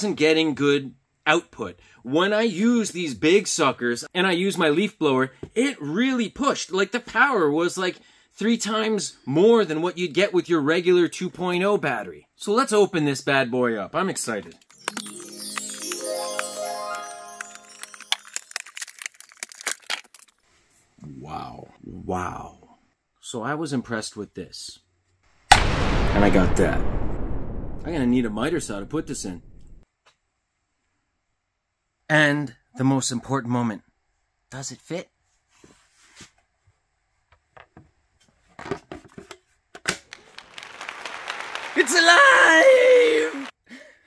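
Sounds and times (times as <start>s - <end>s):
plastic packaging crackling: 17.3s - 20.4s.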